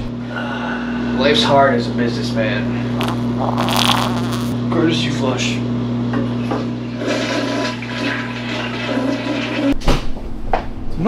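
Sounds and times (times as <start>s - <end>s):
toilet flushing: 6.5s - 9.8s.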